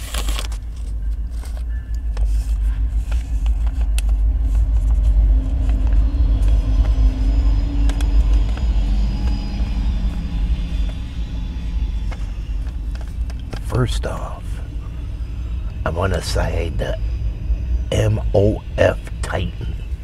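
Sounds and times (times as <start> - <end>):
paper crinkling: 0.0 - 7.0
car engine idling: 0.6 - 20.0.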